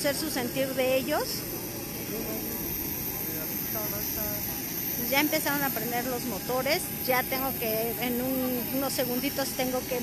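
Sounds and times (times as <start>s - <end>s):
jet engines hissing and whining: 0.0s - 10.0s.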